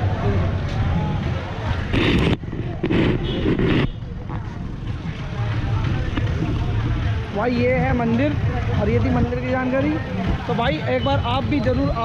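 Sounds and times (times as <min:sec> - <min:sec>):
traffic rumble: 0:00.0 - 0:12.0
wind: 0:00.0 - 0:12.0.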